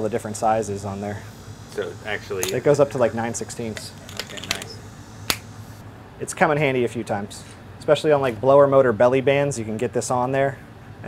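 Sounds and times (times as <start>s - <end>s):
screwdriver bits clicking: 3.7s - 4.8s.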